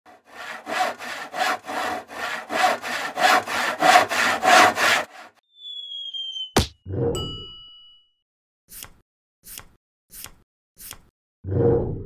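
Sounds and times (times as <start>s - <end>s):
back-and-forth sawing: 0.0s - 5.4s
high falling whistle: 5.4s - 6.6s.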